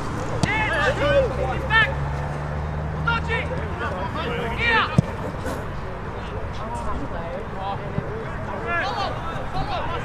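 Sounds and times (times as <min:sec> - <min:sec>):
players shouting: 0:00.2 - 0:05.8, 0:07.5 - 0:10.0.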